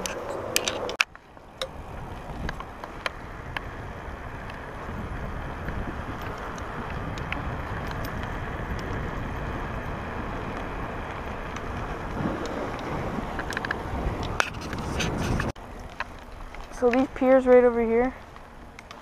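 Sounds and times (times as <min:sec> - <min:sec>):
wind rushing over microphone: 0:00.0 - 0:15.6
low rumble of tyres on pavement: 0:00.0 - 0:19.0.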